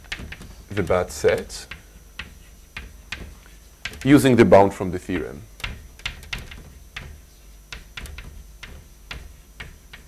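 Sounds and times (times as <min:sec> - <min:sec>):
chalk tapping on blackboard: 0:00.0 - 0:10.0.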